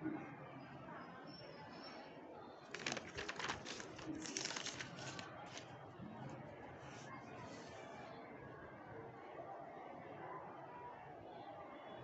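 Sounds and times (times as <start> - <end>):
paper rustling and crinkling: 2.7 - 7.8.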